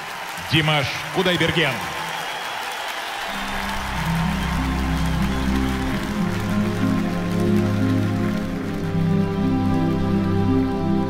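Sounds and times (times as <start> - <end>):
audience applause: 0.0 - 11.0
orchestra playing low chords: 3.4 - 11.0.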